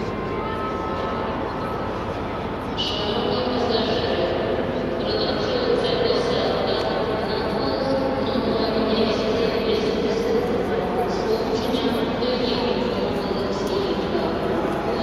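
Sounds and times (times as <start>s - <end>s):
crowd babble: 0.0s - 15.0s.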